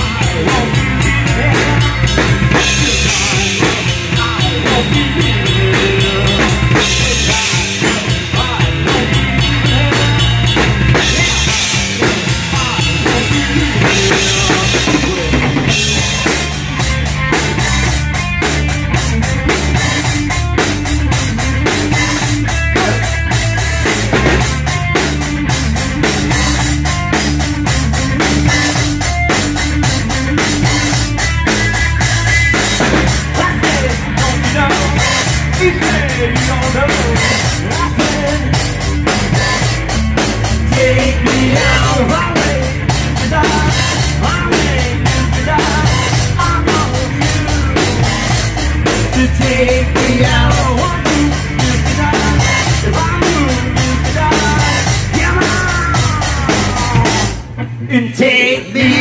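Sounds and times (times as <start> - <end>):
drum kit beat: 0.0 - 57.6
live rock band: 0.0 - 59.0.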